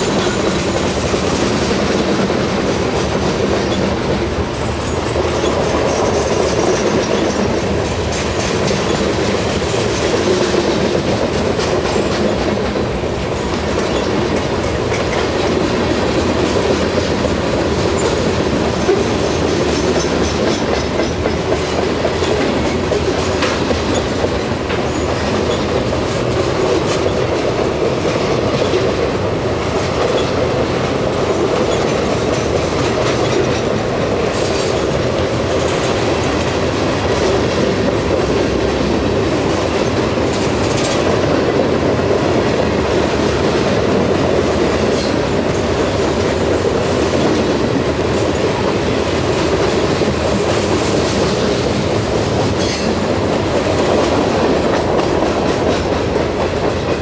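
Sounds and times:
train wheels rumbling on rail: 0:00.0 - 0:57.0.

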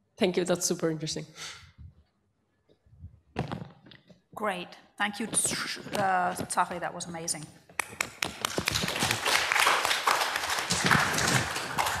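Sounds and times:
audience clapping: 0:07.8 - 0:12.0.

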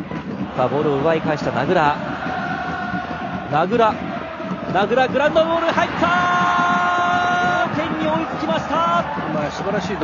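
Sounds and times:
commentator speaking: 0:00.6 - 0:02.1, 0:03.5 - 0:04.0, 0:04.7 - 0:10.0.

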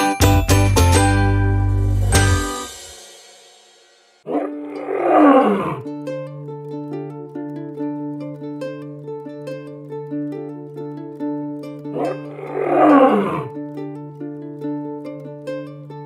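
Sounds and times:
light plucked background music: 0:00.0 - 0:16.0
lion roar: 0:04.3 - 0:05.8, 0:12.0 - 0:13.5.

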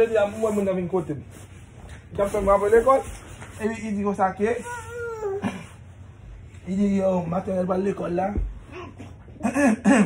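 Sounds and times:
high-pitched vocal cry: 0:04.6 - 0:05.8.

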